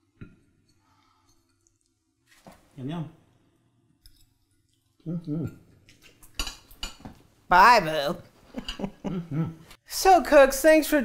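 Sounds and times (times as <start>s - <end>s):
person humming: 5.1s - 5.6s, 9.0s - 9.6s.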